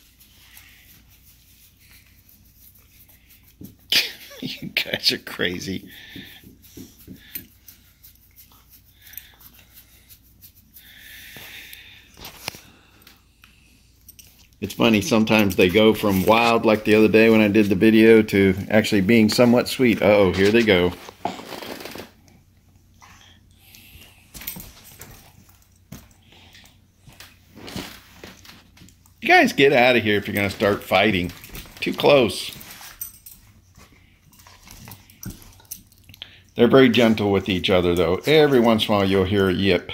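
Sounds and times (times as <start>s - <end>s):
dogs scuffling on carpet: 27.1s - 28.9s.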